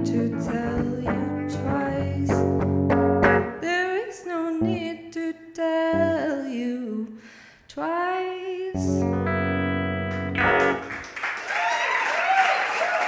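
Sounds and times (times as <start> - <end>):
person singing: 0.0 - 2.7, 3.4 - 9.6
electric guitar chord ringing: 8.8 - 11.0
audience applause and cheers: 10.4 - 13.0.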